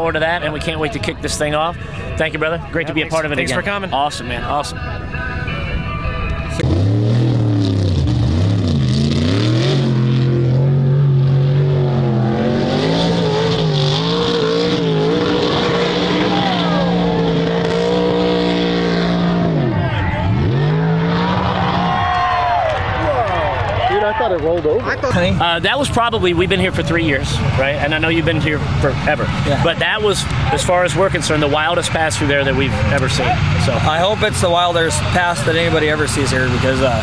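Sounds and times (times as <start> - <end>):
truck engine revving hard: 6.6 - 22.4, 25.3 - 37.0.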